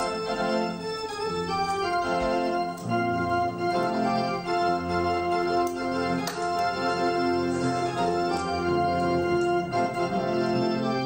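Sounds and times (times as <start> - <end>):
organ playing hymn chords: 0.0 - 11.0.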